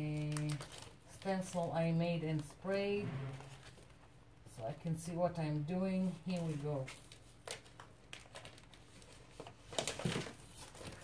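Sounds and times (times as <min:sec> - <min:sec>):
plastic sheet crinkling: 0:00.0 - 0:02.6, 0:06.0 - 0:11.0.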